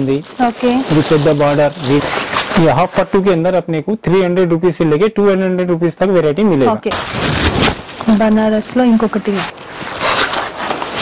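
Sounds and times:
fabric rustling loudly: 0:06.9 - 0:11.0.

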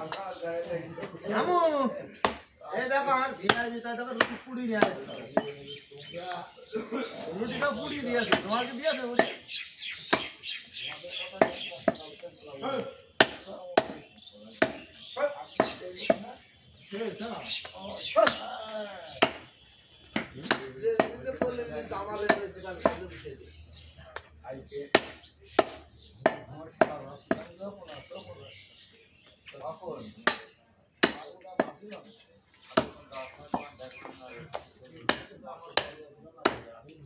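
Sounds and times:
voices talking: 0:00.0 - 0:37.0
cleaver chopping meat on wood: 0:02.2 - 0:02.6, 0:03.4 - 0:05.6, 0:08.2 - 0:09.4, 0:10.0 - 0:10.4, 0:11.3 - 0:12.1, 0:13.2 - 0:14.9, 0:15.6 - 0:16.3, 0:18.2 - 0:23.1, 0:24.9 - 0:27.5, 0:30.2 - 0:31.8, 0:32.6 - 0:36.7.

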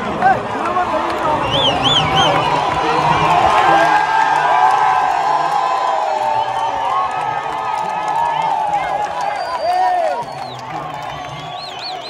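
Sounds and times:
stadium crowd cheering and shouting: 0:00.0 - 0:12.0.

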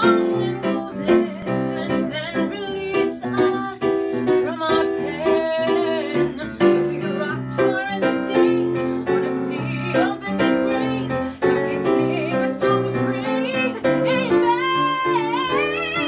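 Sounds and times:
instrumental accompaniment: 0:00.0 - 0:16.0
woman singing slow song: 0:00.0 - 0:16.0.

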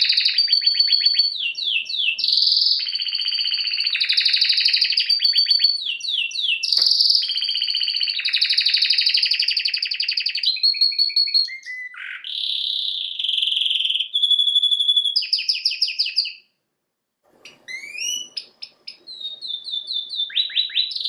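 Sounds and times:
canary singing: 0:00.0 - 0:16.5, 0:17.4 - 0:21.0.

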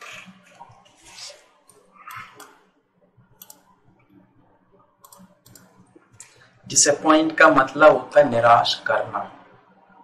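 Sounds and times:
computer mouse clicks: 0:01.6 - 0:04.2, 0:05.0 - 0:06.4.

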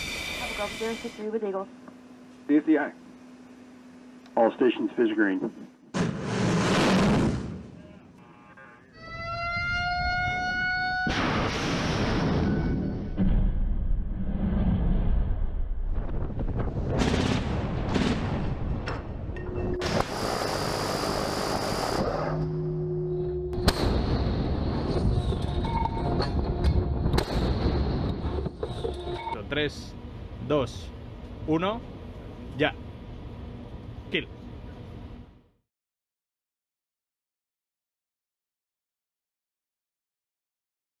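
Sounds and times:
missile launch roaring blast: 0:06.0 - 0:07.6, 0:11.0 - 0:18.8
steady noisy background: 0:17.0 - 0:35.5.

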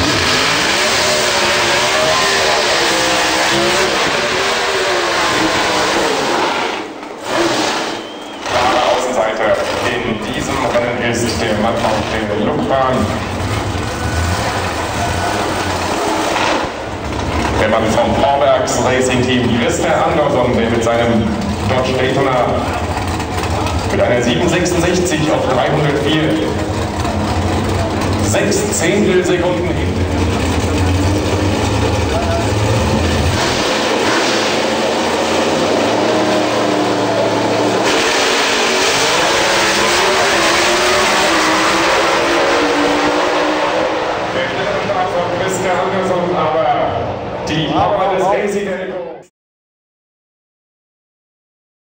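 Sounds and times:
drag car engine running: 0:00.0 - 0:48.6.

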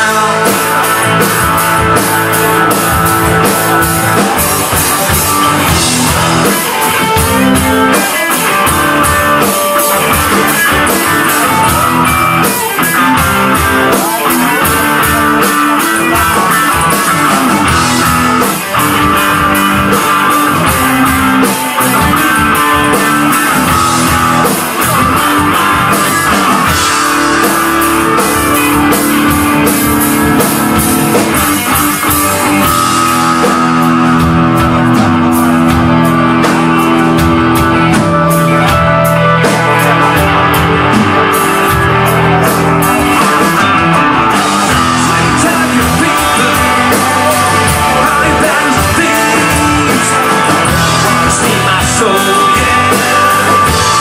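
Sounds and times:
drum kit: 0:00.0 - 0:54.0
electric guitars: 0:00.0 - 0:54.0.

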